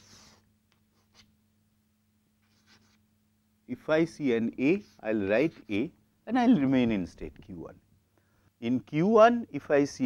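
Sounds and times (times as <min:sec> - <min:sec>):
low steady hum: 0:00.0 - 0:10.0
chalk scratching on blackboard: 0:02.4 - 0:03.0.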